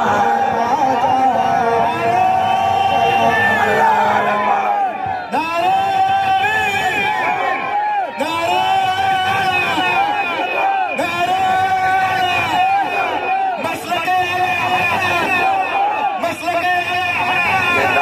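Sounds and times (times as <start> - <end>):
man singing devotional song: 0.0 - 2.2
crowd noise: 0.0 - 18.0.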